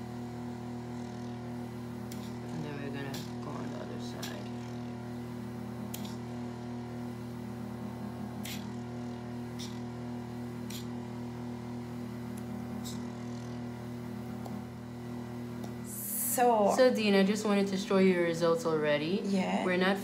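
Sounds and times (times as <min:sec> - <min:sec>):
vacuum pump humming: 0:00.0 - 0:20.0.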